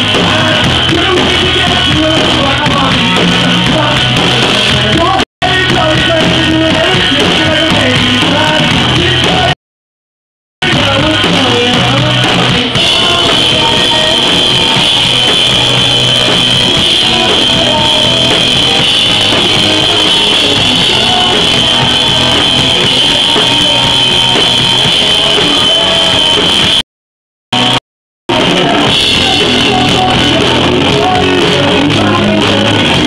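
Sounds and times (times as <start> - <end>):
drum kit: 0.0 - 9.6, 10.6 - 26.8, 27.5 - 33.0
electric guitar: 10.7 - 26.8.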